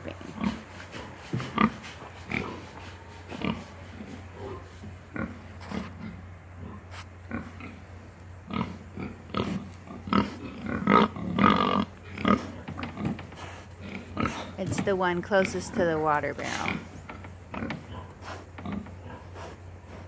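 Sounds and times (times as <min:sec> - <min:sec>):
young pigs grunting: 0:00.0 - 0:20.0.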